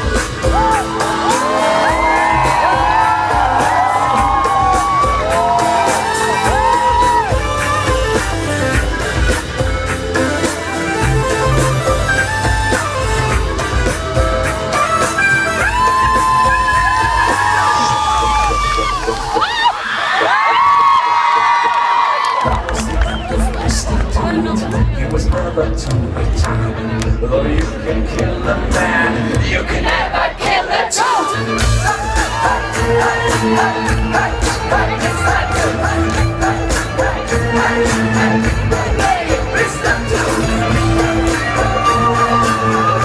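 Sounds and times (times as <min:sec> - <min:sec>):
live rock band playing: 0:00.0 - 0:18.7, 0:31.3 - 0:43.0
crowd whooping: 0:00.2 - 0:08.8, 0:11.3 - 0:23.7, 0:30.7 - 0:43.0.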